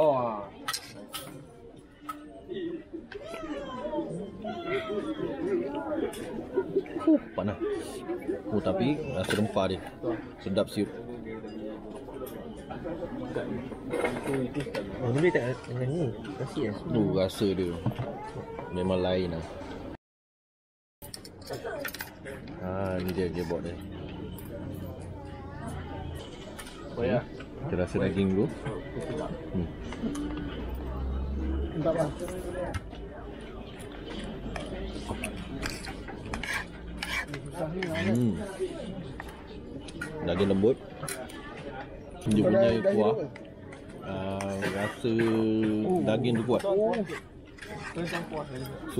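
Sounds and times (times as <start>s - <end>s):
people talking: 21.4s - 48.9s.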